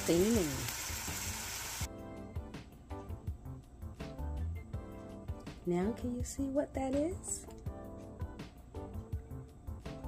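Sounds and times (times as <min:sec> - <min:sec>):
shrimp sizzling in a frying pan: 0:00.0 - 0:01.9
background music: 0:00.1 - 0:10.0.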